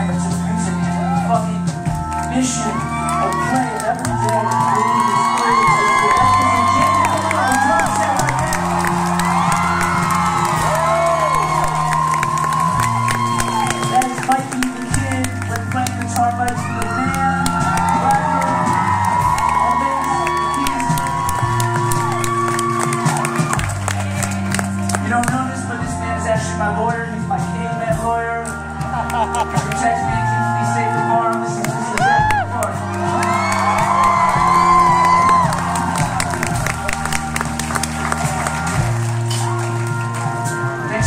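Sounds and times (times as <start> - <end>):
live band music: 0.0 - 41.0
people clapping: 1.8 - 25.5, 28.4 - 30.1, 31.0 - 40.8
crowd cheering and whooping: 2.4 - 15.7, 16.4 - 24.9, 28.8 - 40.7.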